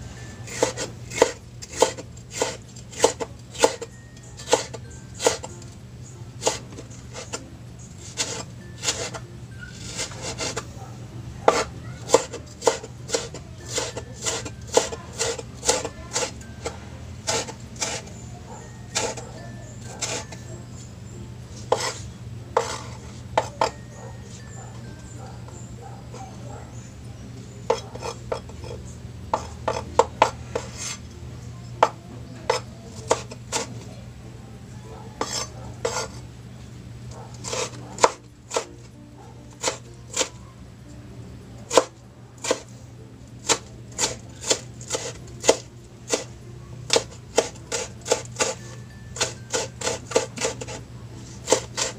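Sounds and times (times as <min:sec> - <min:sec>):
knife scraping board: 0:00.4 - 0:05.5, 0:06.4 - 0:10.7, 0:11.4 - 0:18.2, 0:18.9 - 0:20.5, 0:21.6 - 0:24.6, 0:27.7 - 0:31.1, 0:31.8 - 0:33.8, 0:35.2 - 0:36.3, 0:37.2 - 0:38.9, 0:39.6 - 0:40.4, 0:41.7 - 0:42.7, 0:43.4 - 0:46.3, 0:46.9 - 0:51.9
knife chopping on wooden board: 0:00.5 - 0:05.5, 0:06.4 - 0:07.4, 0:08.0 - 0:09.2, 0:09.8 - 0:10.7, 0:11.4 - 0:18.1, 0:18.9 - 0:19.2, 0:19.9 - 0:20.4, 0:21.6 - 0:23.8, 0:27.7 - 0:31.0, 0:31.8 - 0:33.7, 0:35.2 - 0:36.2, 0:37.4 - 0:38.8, 0:39.6 - 0:40.3, 0:41.7 - 0:42.7, 0:43.4 - 0:46.3, 0:46.9 - 0:50.8, 0:51.4 - 0:51.9.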